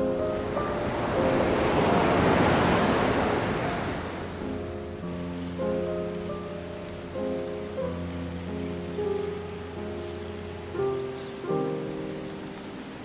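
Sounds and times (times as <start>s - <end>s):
ocean surf washing in: 0.0s - 6.1s
soft background music: 0.0s - 13.0s.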